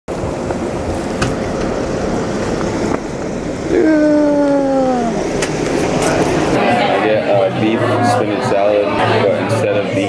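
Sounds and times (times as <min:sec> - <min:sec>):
street noise: 0:00.1 - 0:10.0.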